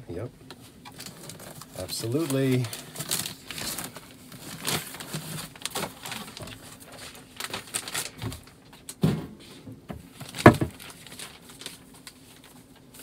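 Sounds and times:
plastic mailer rustling: 0.8s - 9.0s, 10.0s - 13.0s.

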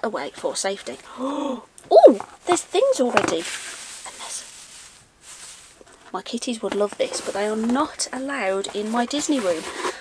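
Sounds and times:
shredded paper rustling: 2.5s - 10.0s.

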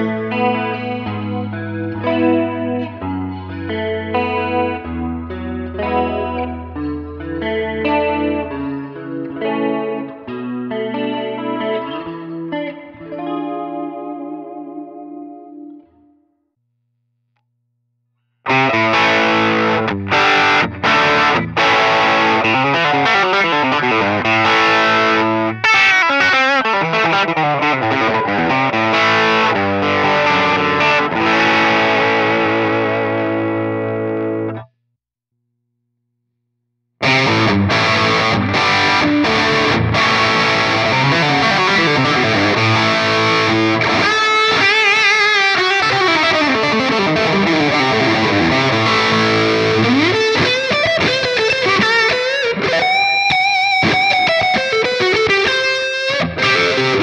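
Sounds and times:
electric guitar playing: 0.0s - 16.3s, 18.4s - 34.7s, 37.0s - 57.0s.

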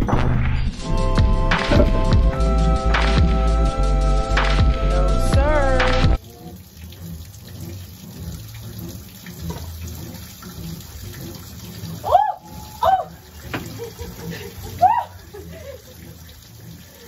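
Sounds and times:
water running from a tap: 5.4s - 17.0s.

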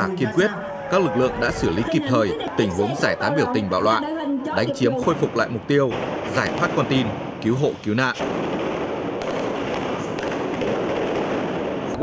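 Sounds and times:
gunshot pops: 8.2s - 12.0s.

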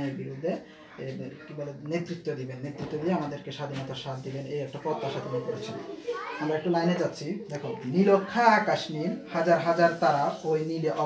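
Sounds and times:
man lecturing: 0.0s - 11.0s.

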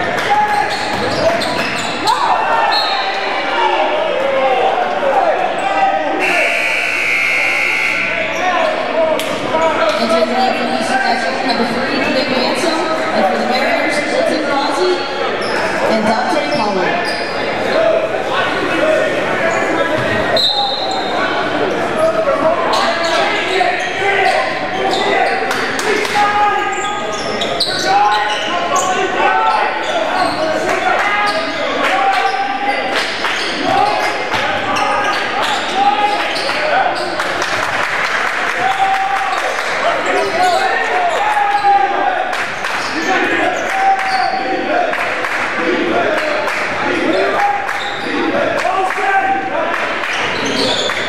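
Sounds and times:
shouts and chatter echoing: 0.0s - 51.0s.

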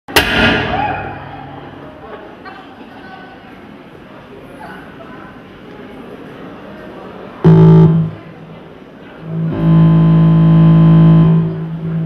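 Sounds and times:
loud crash with ringing tail: 0.1s - 2.1s.

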